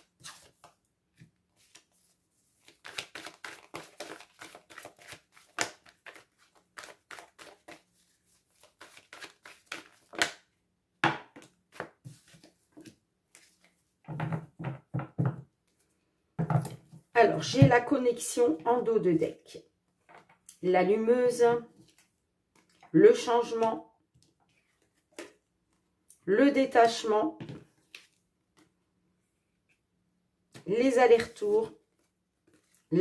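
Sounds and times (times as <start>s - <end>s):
cards shuffling: 0.0s - 0.8s, 2.6s - 10.4s.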